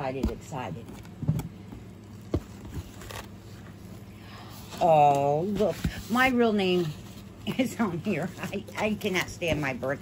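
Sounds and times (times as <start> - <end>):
faint cardboard rustles: 1.8 - 10.0.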